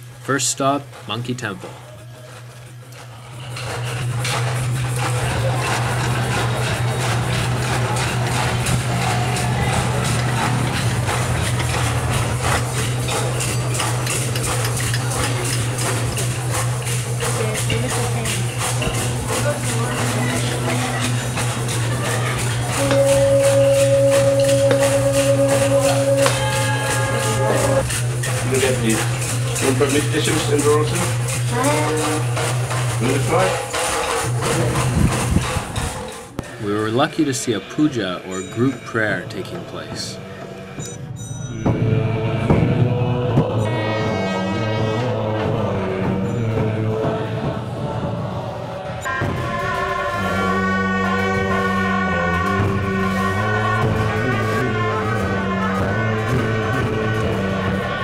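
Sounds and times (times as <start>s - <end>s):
low music drone: 2.6s - 58.0s
singing bowl humming: 22.8s - 27.8s.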